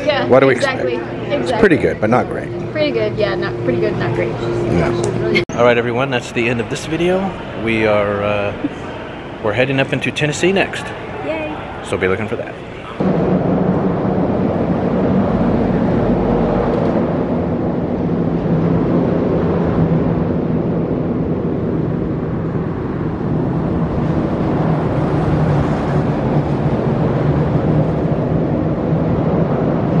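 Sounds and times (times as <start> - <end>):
constant low hum: 0.0 - 30.0
vehicle traffic drone: 0.0 - 30.0.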